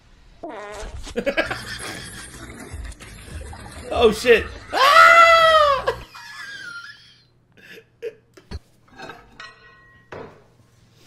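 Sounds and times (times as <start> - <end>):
man shrieking with laughter: 4.5 - 6.1.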